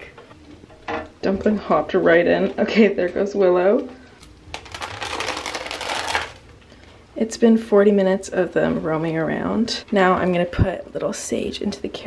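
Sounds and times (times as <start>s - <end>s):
rats rustling in plastic carrier: 4.5s - 6.4s.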